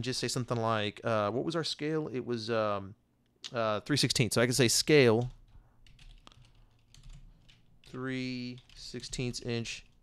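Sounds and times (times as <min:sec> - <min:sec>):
faint keyboard typing: 0:05.0 - 0:10.0.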